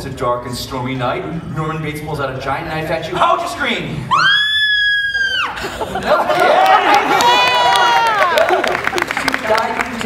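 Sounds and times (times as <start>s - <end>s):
girl screaming: 4.1s - 5.6s.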